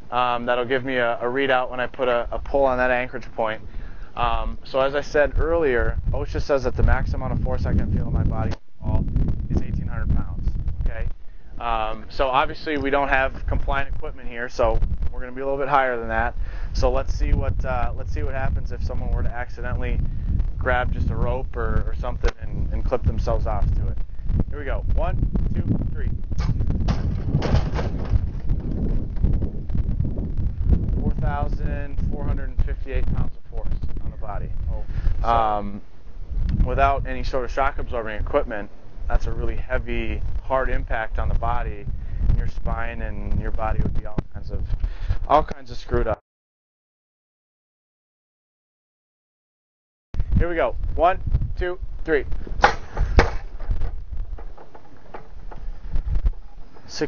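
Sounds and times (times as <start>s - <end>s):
wind buffeting microphone: 0.0s - 46.2s, 50.2s - 57.0s.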